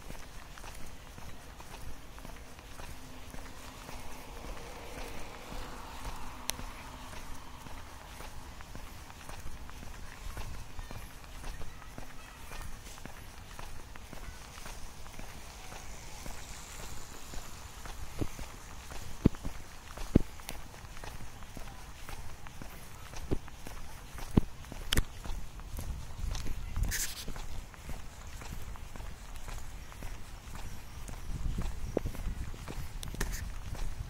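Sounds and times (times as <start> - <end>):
footsteps on paved path: 0.0 - 34.0.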